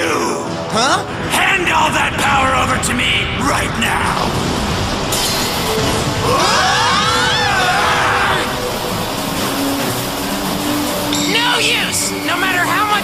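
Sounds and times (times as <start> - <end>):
dramatic music: 0.0 - 13.0.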